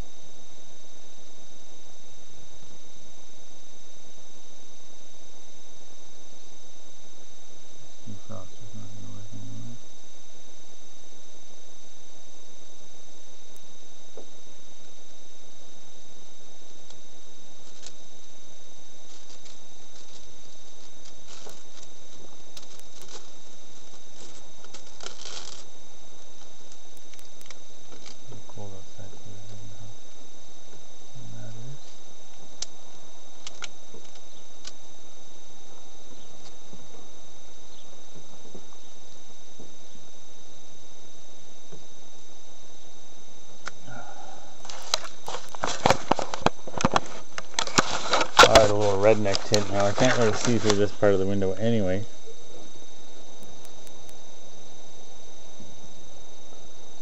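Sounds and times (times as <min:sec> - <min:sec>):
tint film rustling and crackling: 0:16.2 - 0:28.6, 0:31.8 - 0:39.8, 0:44.6 - 0:54.4
steady hiss: 0:43.6 - 0:54.2.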